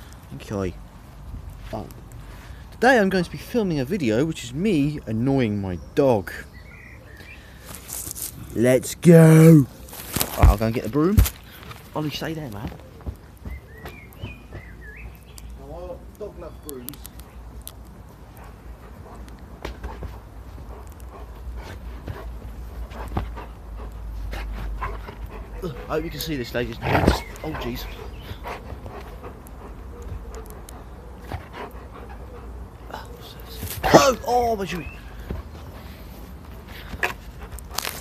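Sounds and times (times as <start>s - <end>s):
dog panting: 18.0s - 38.0s.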